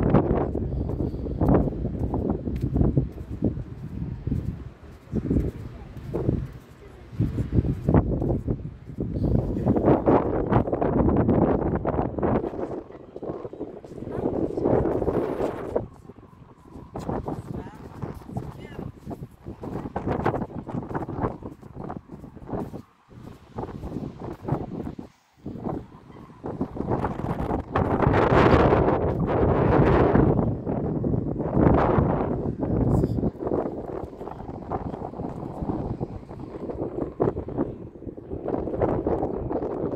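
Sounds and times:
wind buffeting microphone: 0.0s - 39.9s.

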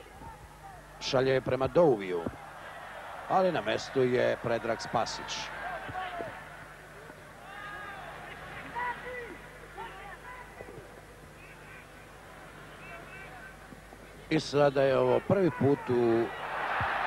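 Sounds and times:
steady low hum: 0.0s - 17.0s
players and crowd shouting: 7.4s - 10.5s.

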